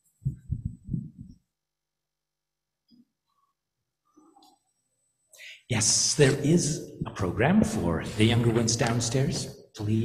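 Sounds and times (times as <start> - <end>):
low muffled thumps: 0.2 - 1.4.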